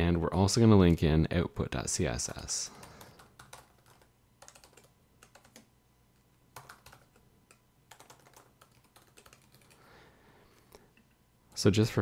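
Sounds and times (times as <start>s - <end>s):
keyboard typing: 2.2s - 5.7s, 6.5s - 9.9s.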